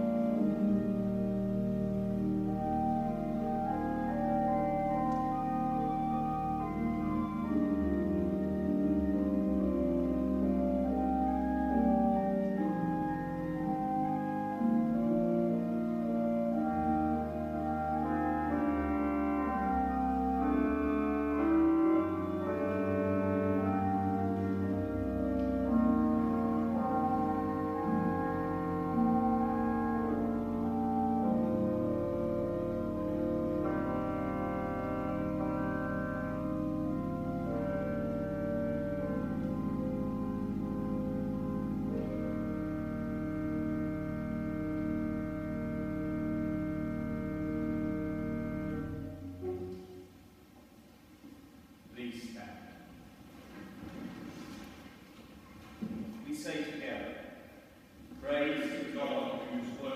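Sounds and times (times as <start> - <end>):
pipe organ chords: 0.0 - 53.1, 55.6 - 59.9.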